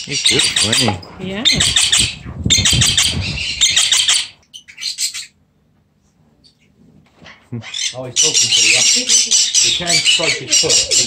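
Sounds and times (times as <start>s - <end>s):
parrot chattering calls: 0.0s - 5.4s, 7.3s - 11.0s.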